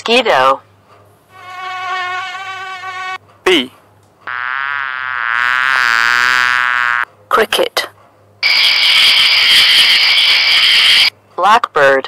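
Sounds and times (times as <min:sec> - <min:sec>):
mosquito whine: 0:04.3 - 0:07.1, 0:08.4 - 0:11.1.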